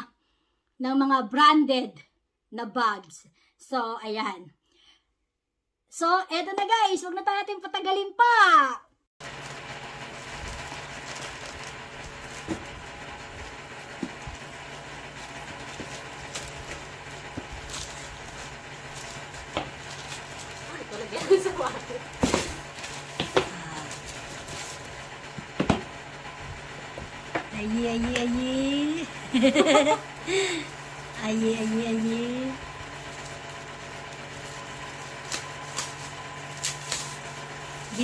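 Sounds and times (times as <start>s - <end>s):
plastic bag rustling and crinkling: 9.2s - 25.3s, 29.4s - 38.0s
steady low hum: 9.2s - 38.0s
cardboard boxes knocking: 22.2s - 23.6s, 25.4s - 25.9s.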